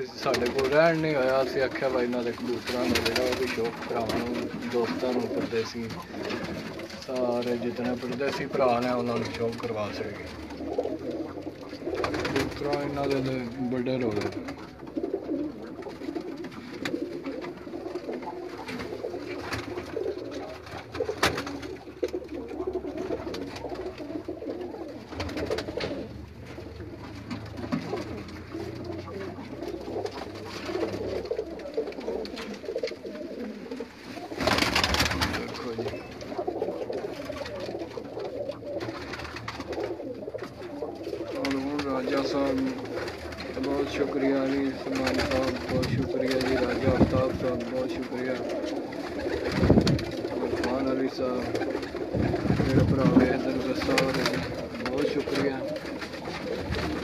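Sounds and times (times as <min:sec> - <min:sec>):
pigeons cooing: 0:00.0 - 0:57.0.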